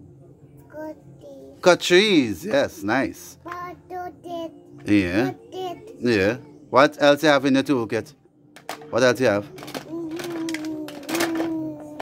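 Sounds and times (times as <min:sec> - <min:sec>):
plastic toy tools clicking: 0:09.6 - 0:11.7
child humming: 0:09.8 - 0:12.0.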